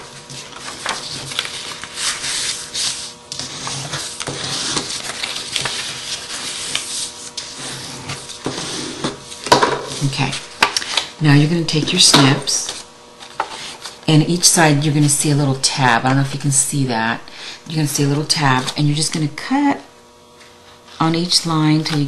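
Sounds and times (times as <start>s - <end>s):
paper rubbing and rustling: 0.0s - 9.4s.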